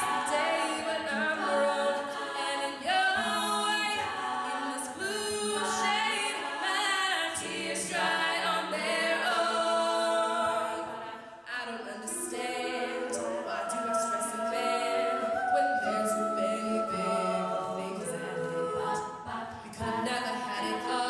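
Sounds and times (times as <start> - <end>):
female a cappella group singing: 0.0 - 21.0.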